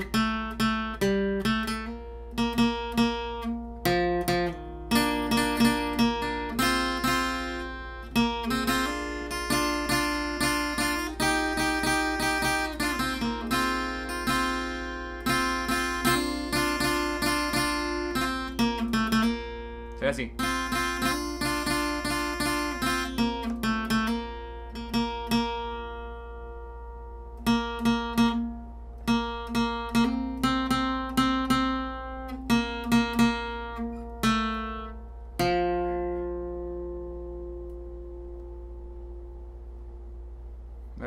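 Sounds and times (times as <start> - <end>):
acoustic guitar single-note lead: 0.0 - 41.0.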